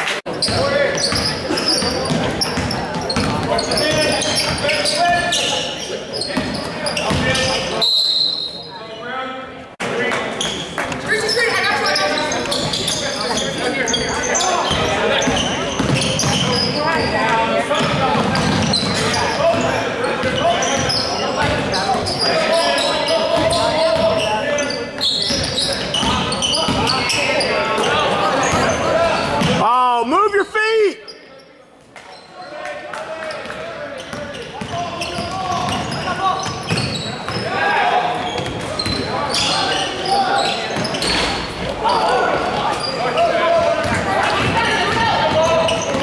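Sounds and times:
spectators talking: 0.0 - 46.0.

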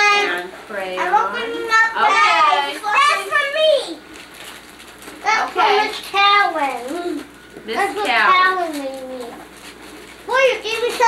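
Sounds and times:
young children talking: 0.0 - 4.1, 10.3 - 11.0.

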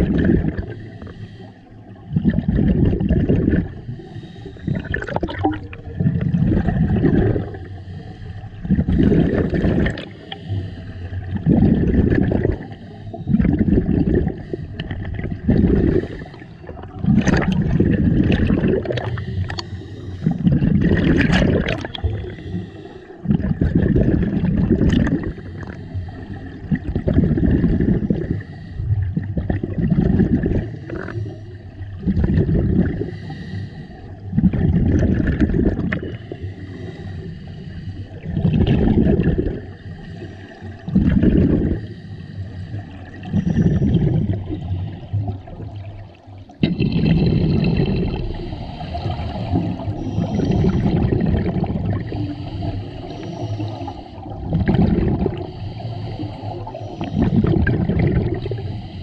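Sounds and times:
exhaled bubbles rumbling: 0.0 - 59.0
scuba regulator breathing underwater: 0.0 - 59.0.

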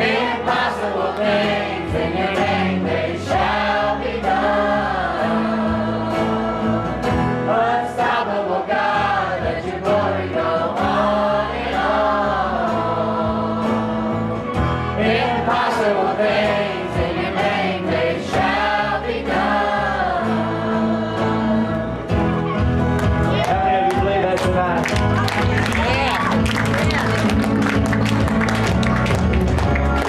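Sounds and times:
bass guitar: 0.0 - 30.0
strummed acoustic guitar: 0.0 - 30.0
man singing: 7.5 - 10.2.

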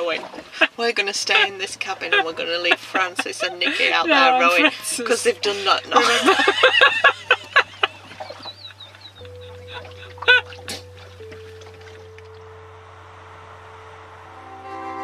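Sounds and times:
women laughing: 0.5 - 10.8
orchestral music: 9.2 - 15.0.

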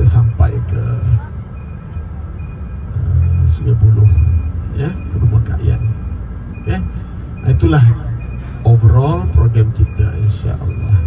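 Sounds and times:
man speaking over loudspeakers: 0.0 - 1.3, 3.3 - 6.0, 6.6 - 11.0
bus engine: 0.0 - 11.0
road rumble: 0.0 - 11.0.

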